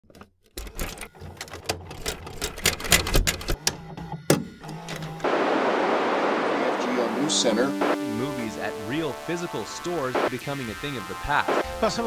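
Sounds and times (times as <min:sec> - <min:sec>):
tv static hiss: 0:05.2 - 0:12.0.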